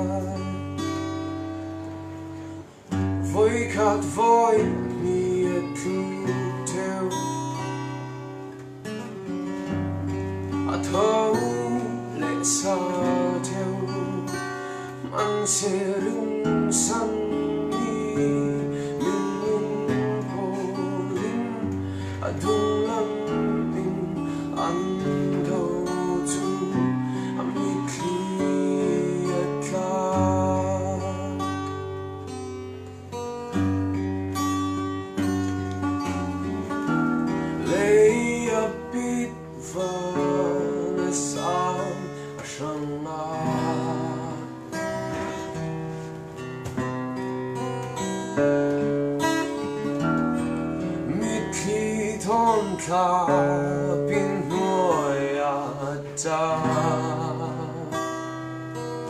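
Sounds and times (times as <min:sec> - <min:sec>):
acoustic guitars playing: 0:00.0 - 0:59.0.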